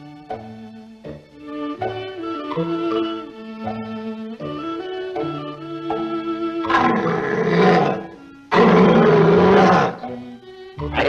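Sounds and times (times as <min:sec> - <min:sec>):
orchestral score: 0:00.0 - 0:11.0
cartoon lion roaring: 0:06.7 - 0:10.0.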